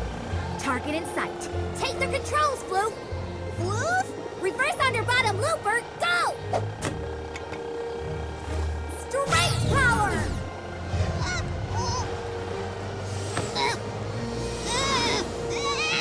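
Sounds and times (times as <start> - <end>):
cartoon background music: 0.0 - 16.0
high swooping vocal cries: 14.4 - 16.0.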